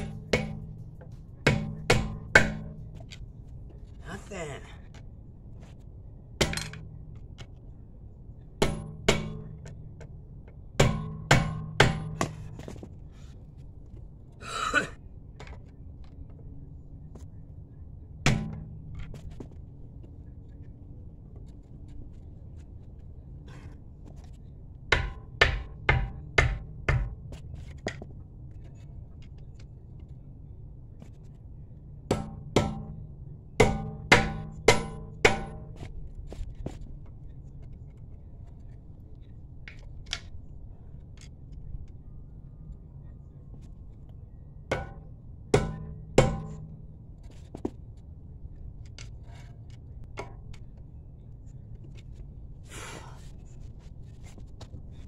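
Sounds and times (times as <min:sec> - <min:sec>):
hammer blows on a tire: 0:00.0 - 0:03.0, 0:08.6 - 0:09.7, 0:10.8 - 0:12.6, 0:32.1 - 0:35.9, 0:44.7 - 0:47.0.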